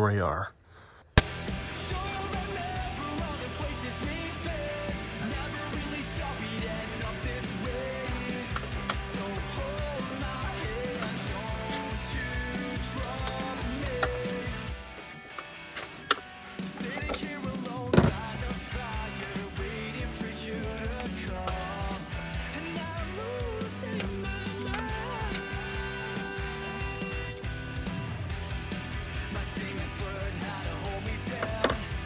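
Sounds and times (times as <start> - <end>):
rock music with guitar and drums: 1.2 - 32.0.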